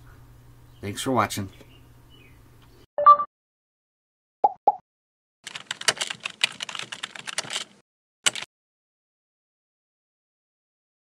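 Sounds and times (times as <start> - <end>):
rapid irregular clicking: 5.5 - 8.5.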